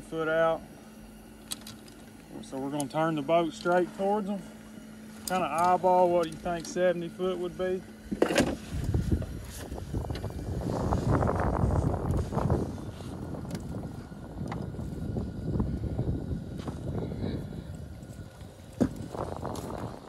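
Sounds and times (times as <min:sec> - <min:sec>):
boat motor and water rush: 0:00.0 - 0:20.0
wind on microphone: 0:08.5 - 0:20.0.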